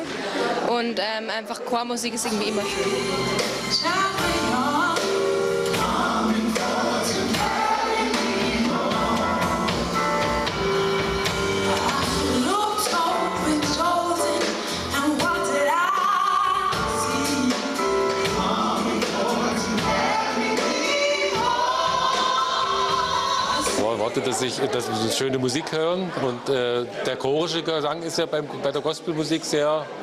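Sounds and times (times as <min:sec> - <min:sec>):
gospel choir singing: 0:02.6 - 0:25.0.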